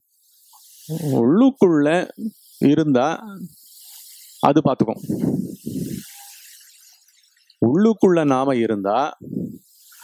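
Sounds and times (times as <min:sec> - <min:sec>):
faint steady hiss: 0:00.0 - 0:10.0
man speaking through headset microphone: 0:01.0 - 0:03.5, 0:04.4 - 0:05.3, 0:07.6 - 0:09.6.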